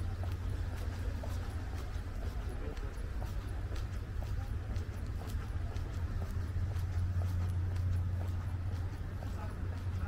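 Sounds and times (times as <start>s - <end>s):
footsteps on stone paving: 0.0s - 10.0s
steady low hum: 0.0s - 10.0s.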